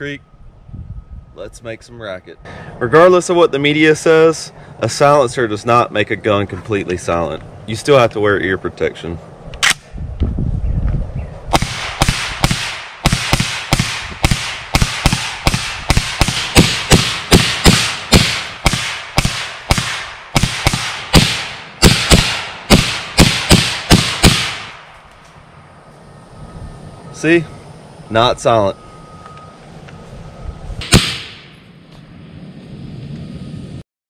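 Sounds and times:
suppressed gunshots rapid: 11.5 - 24.9, 30.8 - 31.6.

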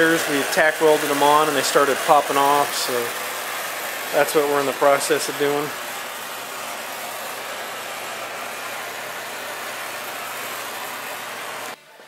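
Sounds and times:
gas torch flame hissing: 0.0 - 11.8.

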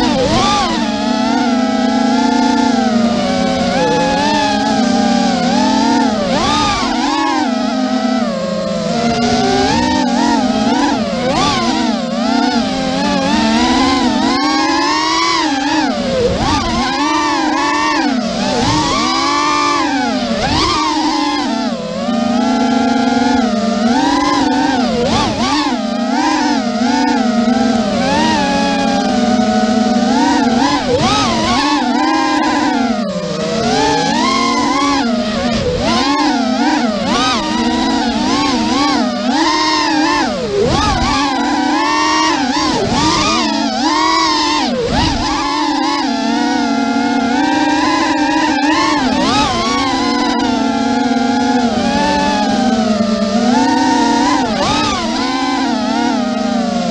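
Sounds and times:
quadcopter motors whining: 0.0 - 56.9.

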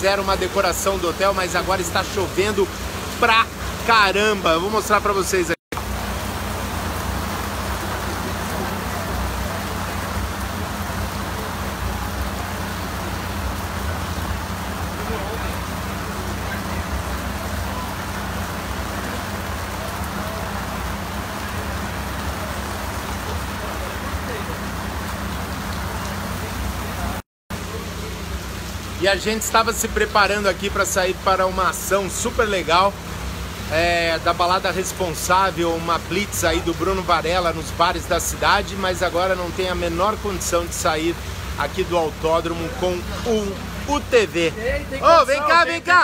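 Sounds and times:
heavy rain on canopies and pavement: 0.0 - 46.0.

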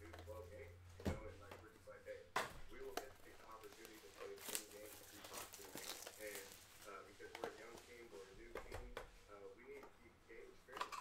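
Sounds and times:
plastic card sleeves crinkling: 2.8 - 8.3.

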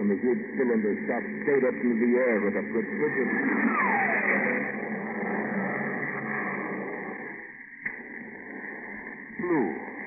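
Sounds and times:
spaceship taking off rushing: 3.4 - 7.1.

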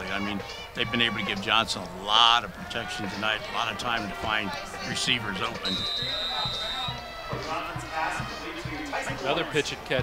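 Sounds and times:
music with drumbeat: 4.0 - 10.0.

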